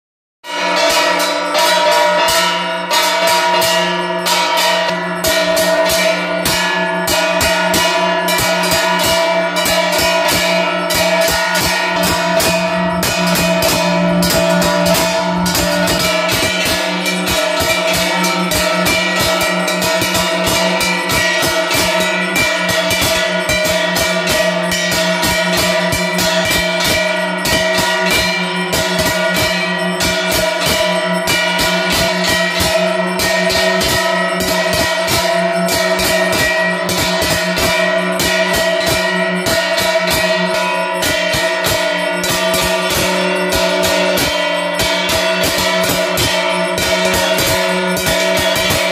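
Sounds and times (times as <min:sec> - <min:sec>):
brass gongs beaten rapidly: 0:00.4 - 0:48.9
bells ringing: 0:00.5 - 0:48.9.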